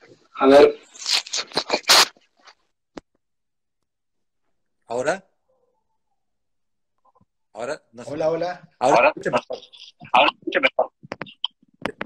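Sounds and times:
earbud rubbing and crackling: 0.9s - 2.6s, 9.2s - 12.0s.

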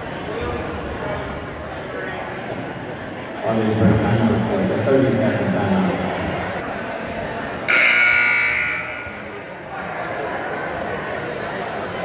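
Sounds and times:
scoreboard buzzer blast: 7.7s - 9.3s.

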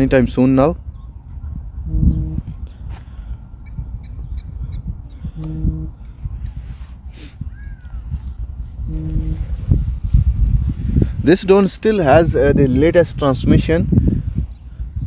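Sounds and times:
wind buffeting microphone: 0.0s - 15.0s
short pitched sounds: 1.9s - 2.4s, 5.4s - 6.0s, 8.9s - 9.7s.

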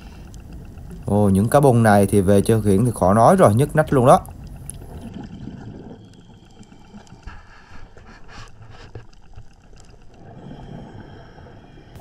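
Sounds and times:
low underwater rumble: 0.0s - 12.0s
short clicks and crackles: 3.8s - 7.3s.

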